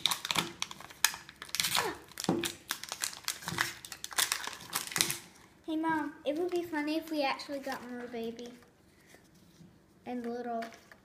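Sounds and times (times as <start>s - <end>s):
plastic wrapper crinkling: 0.0s - 8.7s.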